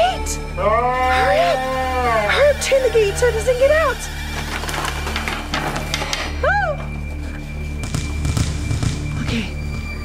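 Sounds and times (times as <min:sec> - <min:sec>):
low droning background music: 0:00.0 - 0:10.0.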